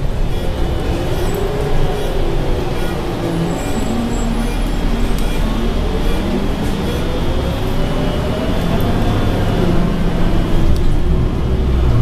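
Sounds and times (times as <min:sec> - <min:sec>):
bus interior rumble: 0:00.0 - 0:12.0.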